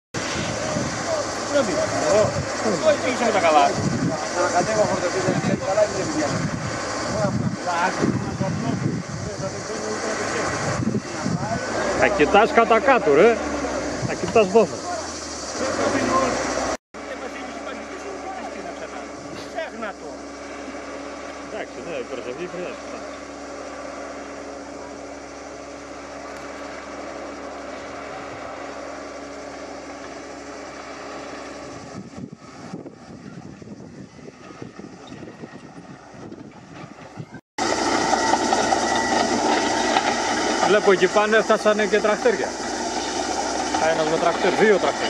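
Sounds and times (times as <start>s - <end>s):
engine running with constant hum: 0.2s - 45.0s.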